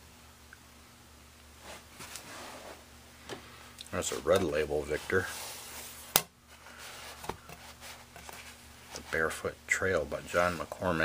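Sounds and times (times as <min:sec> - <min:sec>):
faint rubbing: 0:01.6 - 0:02.9, 0:04.0 - 0:09.4.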